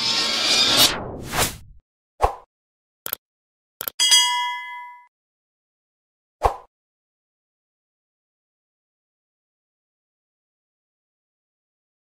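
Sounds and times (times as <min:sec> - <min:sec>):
bright bell ding: 0:04.0 - 0:05.1.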